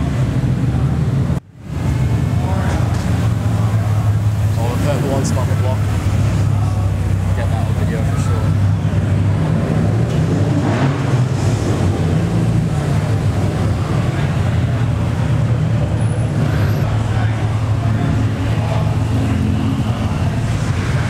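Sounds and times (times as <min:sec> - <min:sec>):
car engines rumbling: 0:00.0 - 0:21.0.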